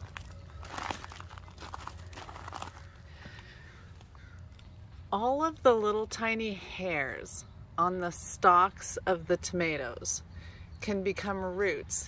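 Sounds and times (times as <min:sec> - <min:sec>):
crunching and rustling in soil: 0:00.0 - 0:04.1.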